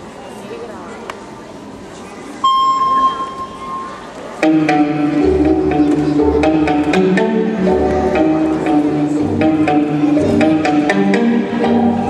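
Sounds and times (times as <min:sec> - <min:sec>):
murmur of voices: 0:00.0 - 0:12.0
electronic beep tone: 0:02.4 - 0:04.1.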